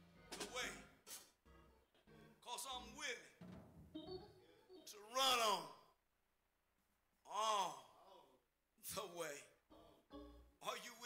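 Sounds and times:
man giving wordless vocal calls: 4.2 - 5.8, 7.3 - 11.0.

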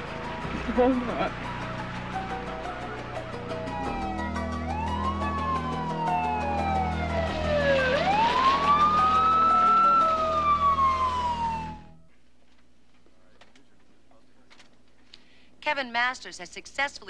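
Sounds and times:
ambulance siren wailing: 0.0 - 12.1
background music: 0.0 - 12.1.

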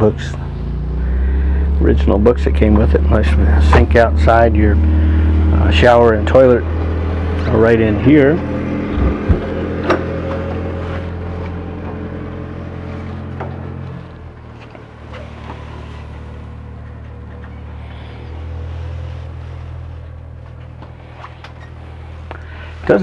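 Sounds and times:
low motor hum: 0.0 - 23.0.

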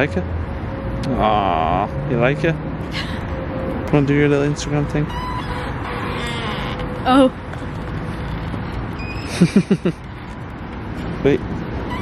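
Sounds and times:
street traffic: 0.0 - 12.0
person laughing: 9.3 - 10.0.

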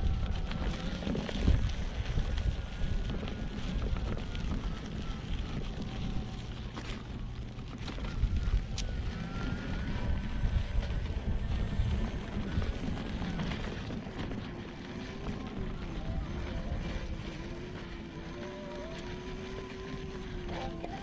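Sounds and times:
electric motor whining: 0.0 - 21.0
low rumble: 0.0 - 21.0.

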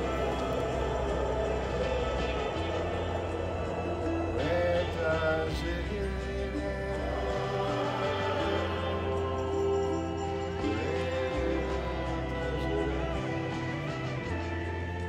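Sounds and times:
pop song with vocal harmonies: 0.0 - 15.0.

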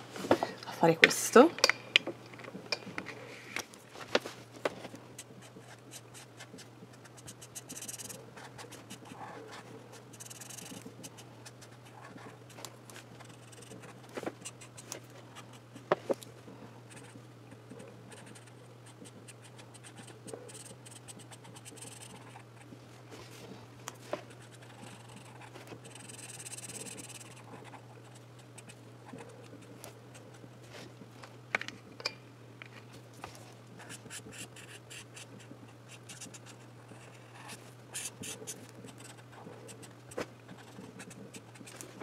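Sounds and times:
marker scratching on paper: 5.2 - 12.3, 13.2 - 15.6, 18.1 - 22.4, 24.3 - 28.8, 33.8 - 41.8.

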